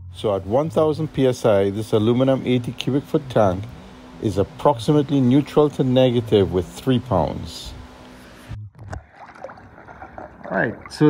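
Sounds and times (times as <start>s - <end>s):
muffled underwater hum: 0.0s - 11.0s
pool water lapping: 0.2s - 11.0s.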